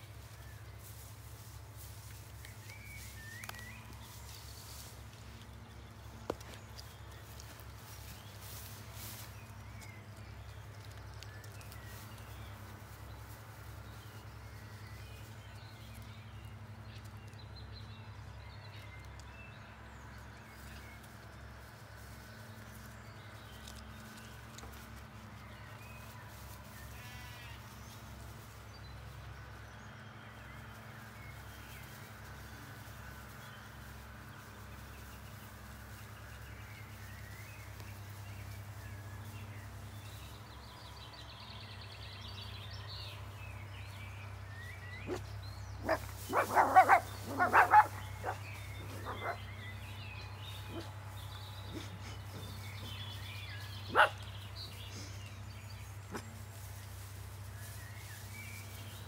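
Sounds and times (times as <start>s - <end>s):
faint birdsong: 0.0s - 59.0s
sheep bleating: 26.8s - 27.8s.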